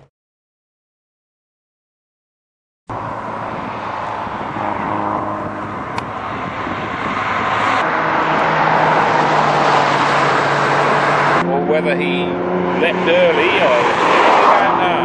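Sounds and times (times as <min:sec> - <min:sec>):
car engines: 0:02.9 - 0:15.0
tyre and road noise: 0:02.9 - 0:15.0.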